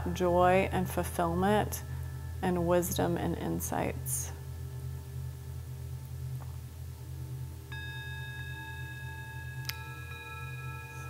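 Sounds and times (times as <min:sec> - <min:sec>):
low steady hum: 0:00.0 - 0:11.0
meditation bell ringing: 0:07.7 - 0:11.0.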